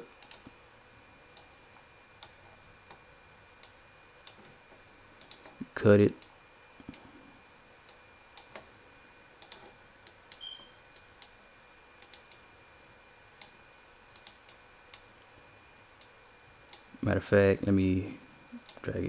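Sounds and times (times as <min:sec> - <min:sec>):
computer mouse clicking: 0:00.1 - 0:00.5, 0:05.2 - 0:05.5, 0:09.4 - 0:11.4, 0:12.0 - 0:12.4, 0:13.4 - 0:15.2.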